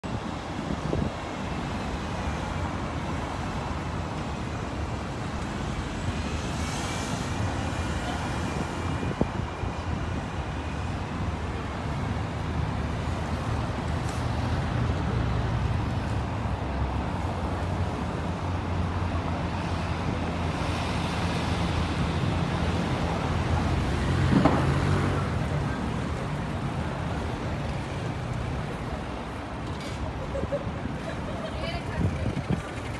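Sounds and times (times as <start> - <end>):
hum of car engines and tyres: 0.0 - 32.9.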